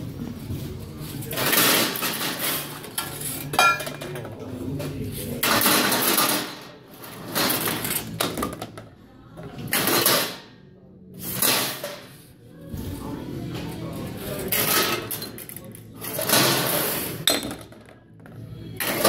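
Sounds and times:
bottles and cans clattering: 0:01.3 - 0:04.3.

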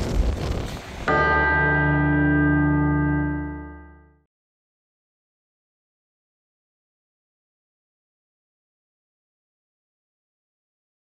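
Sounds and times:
wind rumbling on microphone: 0:00.0 - 0:01.1
bell-like chime: 0:01.1 - 0:04.1.

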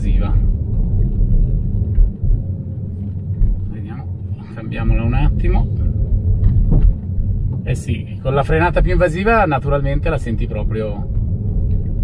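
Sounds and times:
road and tyre rumble: 0:00.0 - 0:12.0.

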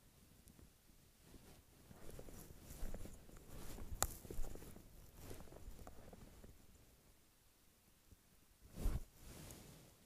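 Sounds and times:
rustling and crunching handling: 0:01.2 - 0:06.8.

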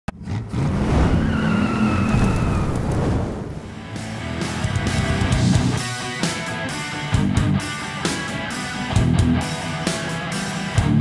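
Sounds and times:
tires squealing: 0:00.2 - 0:03.7
high squeal: 0:00.9 - 0:03.4.

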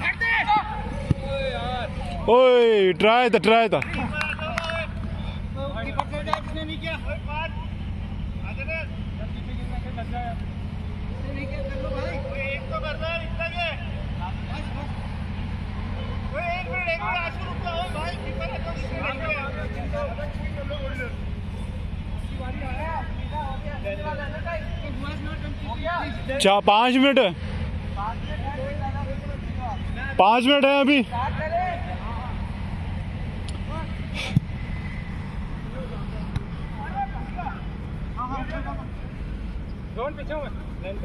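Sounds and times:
distant players calling out: 0:00.0 - 0:41.0.

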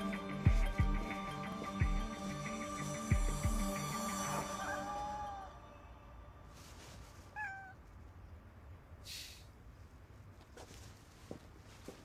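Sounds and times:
cat meowing: 0:07.3 - 0:07.9.

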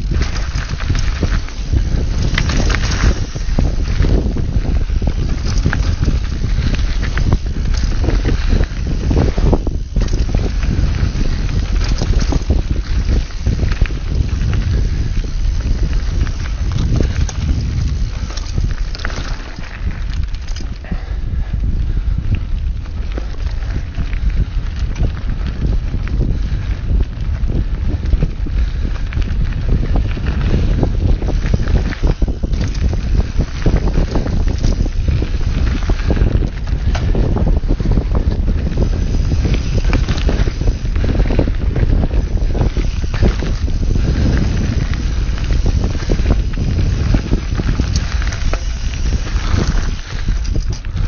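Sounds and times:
bike rattles and knocks: 0:00.0 - 0:51.0
bike tyre rumble: 0:00.0 - 0:51.0
wind buffeting microphone: 0:00.0 - 0:51.0.

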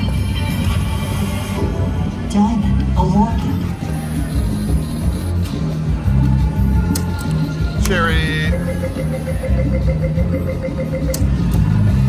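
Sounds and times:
slot machine music and tones: 0:07.9 - 0:11.8.

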